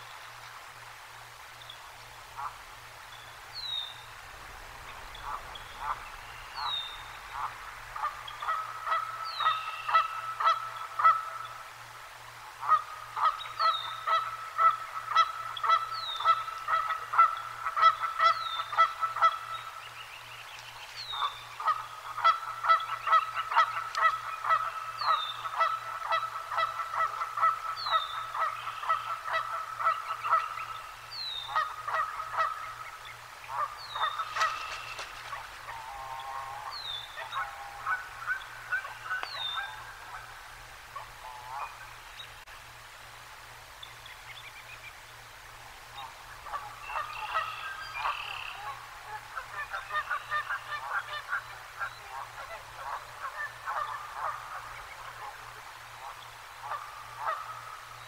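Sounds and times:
geese honking: 0:05.2 - 0:11.4, 0:21.1 - 0:30.7, 0:31.4 - 0:32.7, 0:33.5 - 0:40.3, 0:46.4 - 0:55.4, 0:56.0 - 0:57.7.

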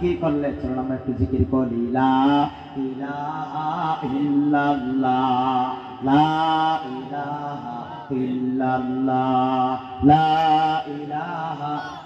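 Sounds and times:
man chanting through a microphone: 0:00.0 - 0:12.0.

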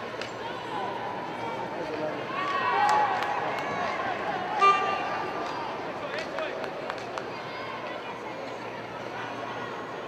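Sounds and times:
crowd shouting: 0:02.3 - 0:05.9.

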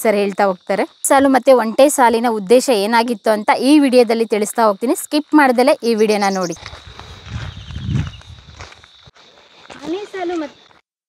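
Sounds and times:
footsteps on sandy dirt path: 0:06.2 - 0:10.9.

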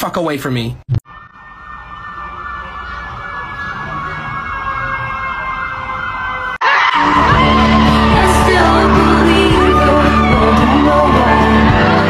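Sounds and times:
warbling siren-like tone: 0:01.0 - 0:12.0
pop music with singing: 0:06.6 - 0:12.0.

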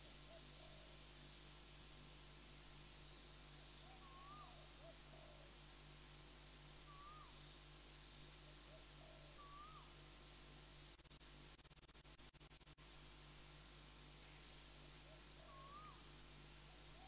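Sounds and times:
soft bird chirps: 0:02.9 - 0:05.5, 0:06.3 - 0:10.1, 0:13.8 - 0:16.1
faint bird whistle: 0:03.8 - 0:05.4, 0:06.8 - 0:07.4, 0:08.7 - 0:10.0, 0:15.0 - 0:16.0.

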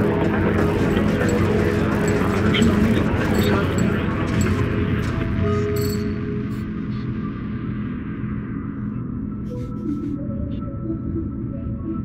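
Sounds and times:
rapid electronic clicking and crackling: 0:00.0 - 0:05.6.

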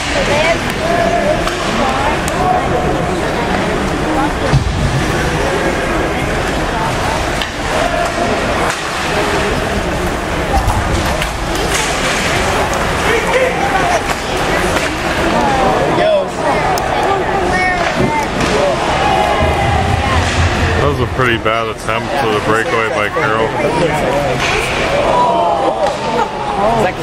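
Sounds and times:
hockey sticks and puck clacking: 0:00.0 - 0:02.4, 0:06.4 - 0:09.7, 0:10.5 - 0:15.4, 0:16.7 - 0:19.4, 0:24.4 - 0:24.9
spectators chatting: 0:00.0 - 0:27.0.

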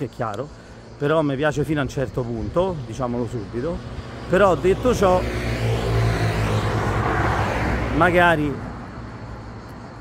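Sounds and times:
vehicle passing by: 0:03.0 - 0:10.0.

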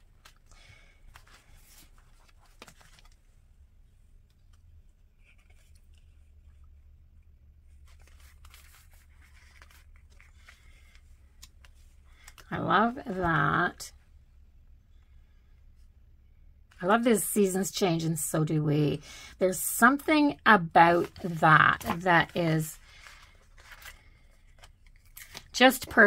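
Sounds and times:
paper rustling: 0:00.0 - 0:03.3, 0:04.5 - 0:06.7, 0:07.7 - 0:13.3, 0:20.8 - 0:26.0.

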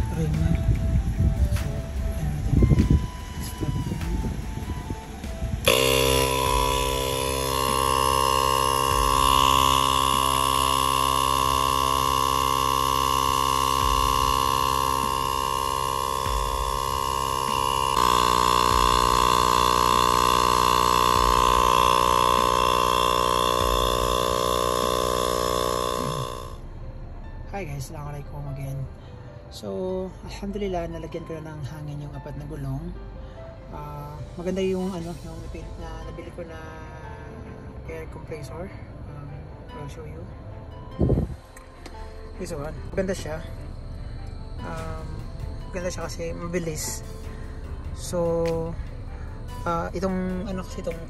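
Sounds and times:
electric air compressor running: 0:00.0 - 0:26.8, 0:41.0 - 0:51.0.

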